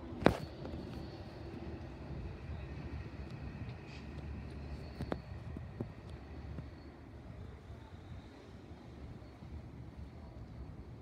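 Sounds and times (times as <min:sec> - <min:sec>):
diesel train rumbling: 0:00.0 - 0:11.0.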